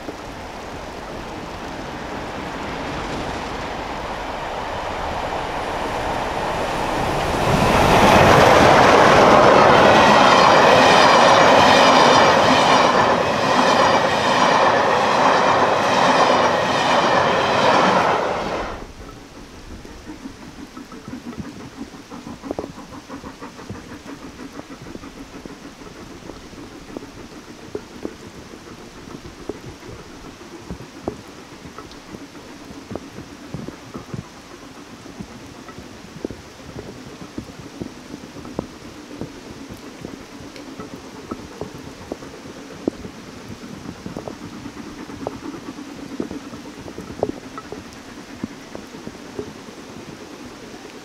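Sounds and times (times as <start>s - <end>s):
steady rain: 0.0s - 51.0s
steam train passing: 0.0s - 51.0s
wheels clicking over rail joints: 0.0s - 51.0s.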